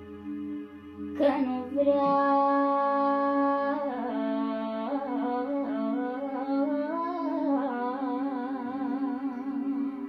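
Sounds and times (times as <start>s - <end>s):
woman singing wordless melody: 0.0s - 10.0s.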